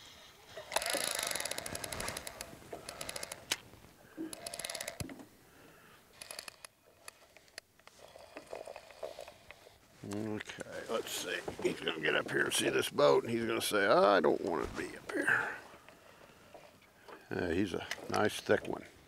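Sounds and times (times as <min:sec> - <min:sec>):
fishing reel clicking: 0:00.6 - 0:03.6, 0:04.2 - 0:05.1, 0:06.2 - 0:07.6.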